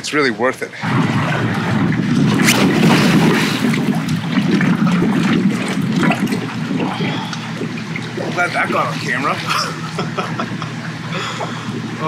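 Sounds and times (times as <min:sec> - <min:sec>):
water splashing and sloshing: 0:00.8 - 0:12.0.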